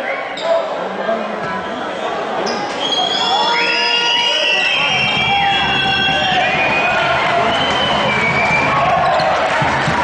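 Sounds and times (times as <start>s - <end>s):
crowd voices echoing in hall: 0.0s - 10.0s.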